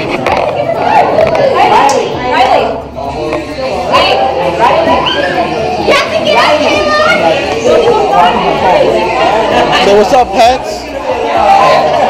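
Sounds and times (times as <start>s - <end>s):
people talking: 0.0s - 12.0s
children's high voices: 3.8s - 9.7s.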